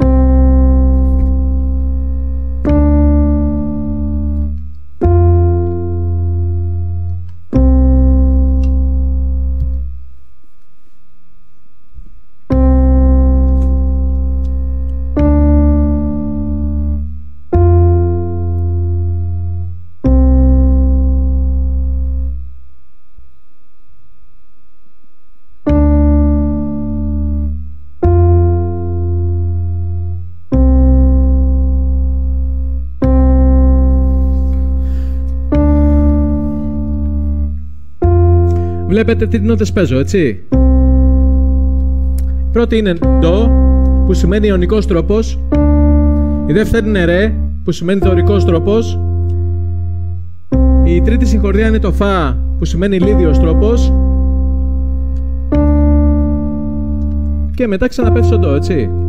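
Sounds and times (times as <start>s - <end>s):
electric piano chords: 0.0s - 10.2s, 12.4s - 22.6s, 25.6s - 59.0s.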